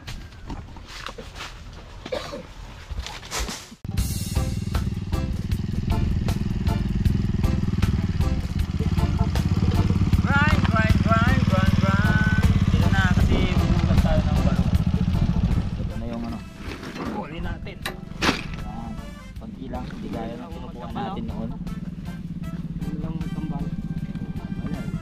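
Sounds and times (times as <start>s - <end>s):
motorcycle engine running: 3.9s - 16.6s, 17.4s - 25.0s.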